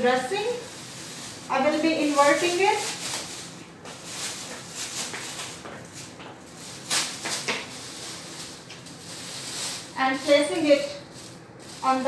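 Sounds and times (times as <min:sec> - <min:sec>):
plastic glove crinkling: 0:00.0 - 0:12.0.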